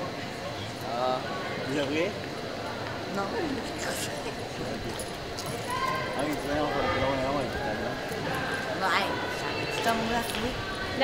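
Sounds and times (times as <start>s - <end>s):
people talking in a large hall: 0.0s - 11.0s.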